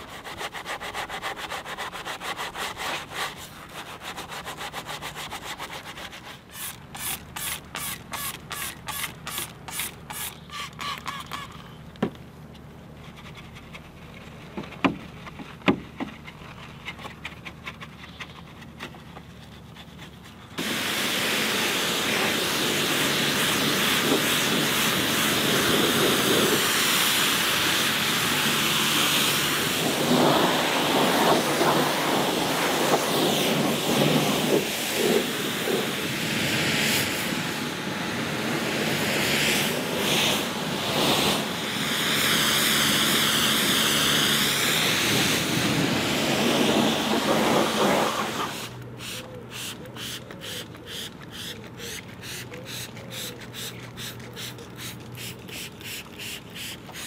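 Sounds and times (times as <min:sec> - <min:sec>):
pressure washer jet hissing: 0:06.4 - 0:11.5, 0:20.6 - 0:57.0.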